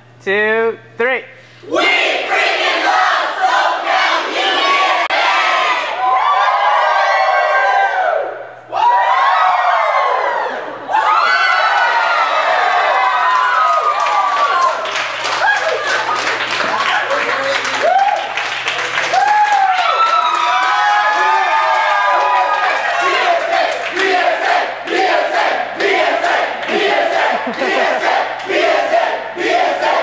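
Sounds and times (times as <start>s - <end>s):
group shouting and cheering: 1.7s - 30.0s
people clapping: 11.4s - 30.0s
people laughing: 15.4s - 17.6s, 26.8s - 28.4s.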